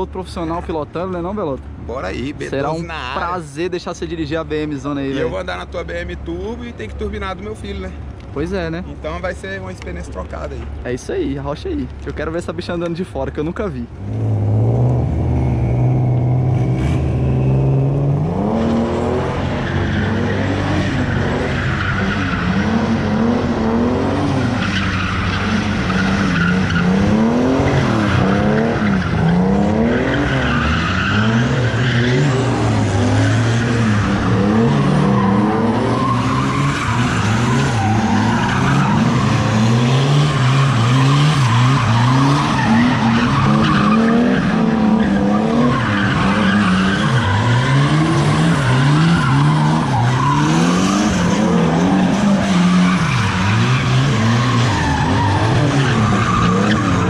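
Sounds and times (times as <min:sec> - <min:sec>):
car engine revving: 0:13.9 - 0:57.0
tyres squealing: 0:24.3 - 0:57.0.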